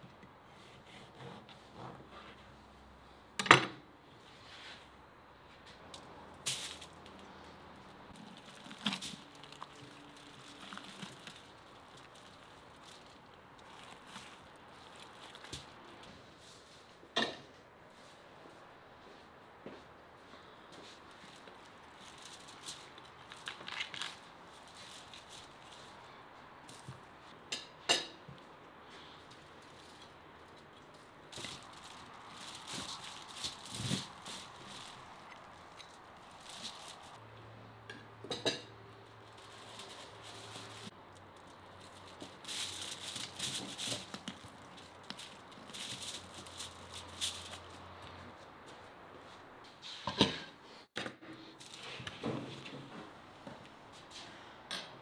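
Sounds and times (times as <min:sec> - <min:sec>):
roasted skin crackling and tearing: 0:06.4 - 0:15.9, 0:21.1 - 0:26.0, 0:29.3 - 0:37.2.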